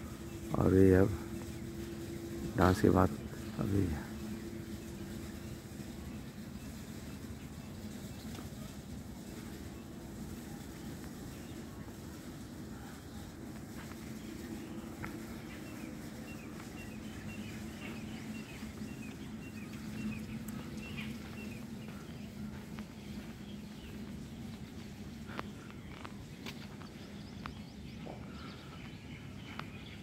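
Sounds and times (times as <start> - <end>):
birds chirping: 0.0 - 30.0
steady low hum: 0.0 - 30.0.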